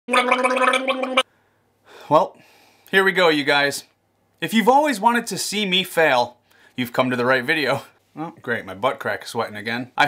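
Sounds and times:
man gargling: 0:00.1 - 0:01.2.

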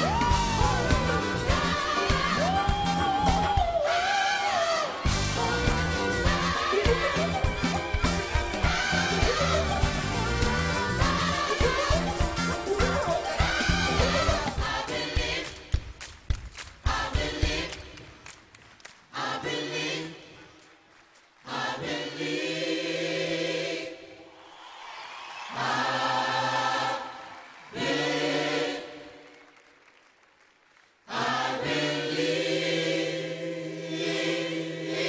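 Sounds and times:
gospel choir singing: 0:00.0 - 0:15.9, 0:16.8 - 0:18.2, 0:19.1 - 0:20.8, 0:21.4 - 0:29.6, 0:31.0 - 0:35.0.

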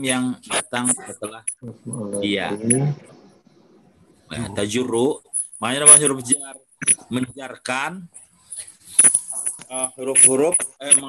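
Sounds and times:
man's voice drawn-out syllables: 0:00.0 - 0:03.1.

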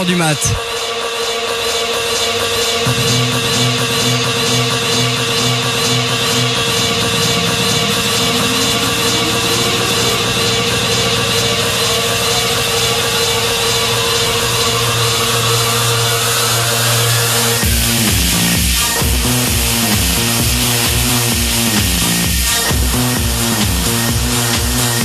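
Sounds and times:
rising synth sweep: 0:00.0 - 0:22.8
steady low bass: 0:02.1 - 0:25.0.

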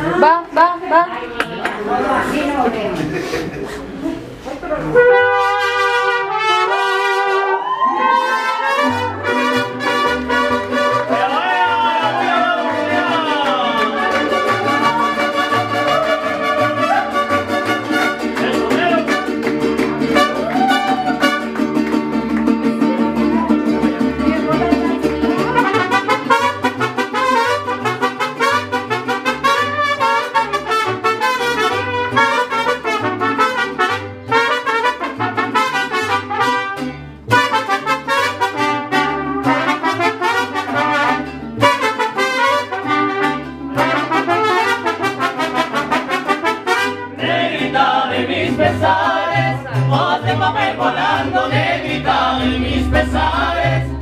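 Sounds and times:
mariachi band playing: 0:00.0 - 0:54.0
trumpets: 0:04.7 - 0:19.5, 0:20.1 - 0:21.7, 0:25.5 - 0:47.2.

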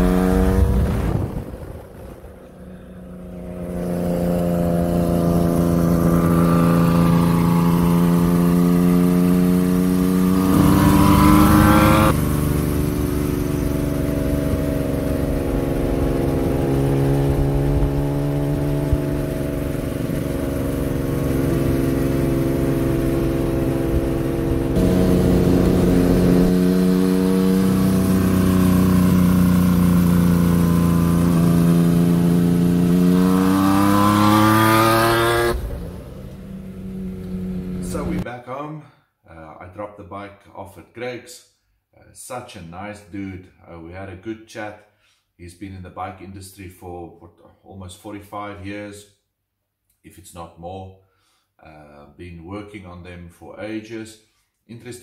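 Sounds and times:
motorcycle engine accelerating: 0:00.0 - 0:38.2.

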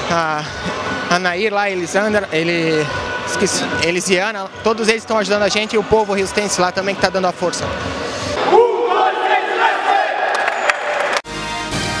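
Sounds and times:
men shouting a cheer together: 0:08.4 - 0:11.1.

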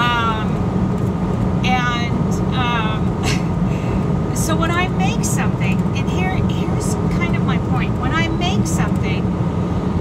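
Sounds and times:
woman speaking: 0:00.0 - 0:00.6, 0:01.6 - 0:03.5, 0:04.3 - 0:09.2
truck engine rumbling: 0:00.0 - 0:10.0.

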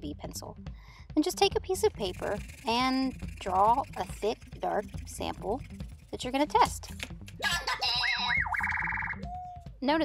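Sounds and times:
cartoon boing sound effect: 0:07.4 - 0:09.2.

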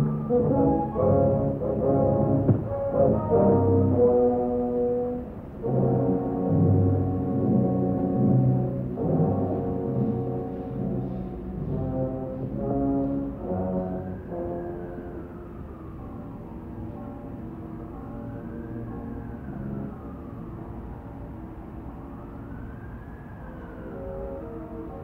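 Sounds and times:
muffled orchestral music with brass: 0:00.0 - 0:23.2, 0:23.8 - 0:25.0.

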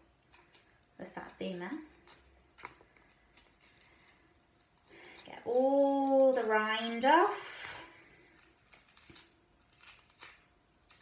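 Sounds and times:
fruit rind being peeled: 0:00.0 - 0:11.0.

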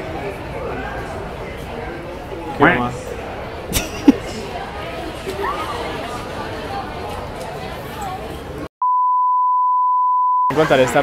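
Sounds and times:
murmur of voices: 0:00.0 - 0:08.7
steady high test tone beep: 0:08.8 - 0:10.5.

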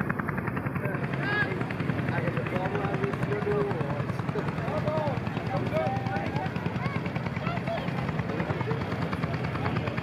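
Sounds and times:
tractor engine idling: 0:00.0 - 0:10.0
people talking: 0:00.6 - 0:10.0.

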